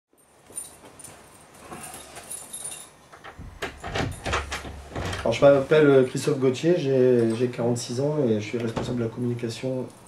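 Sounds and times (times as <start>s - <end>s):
keys jangling in door lock: 1.8s - 5.3s
lock and handle knocks: 3.2s - 5.4s, 8.7s - 9.1s.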